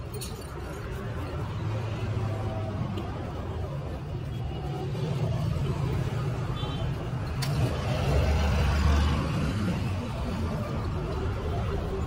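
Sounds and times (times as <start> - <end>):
motor vehicle engine rumbling: 0.0 - 12.0.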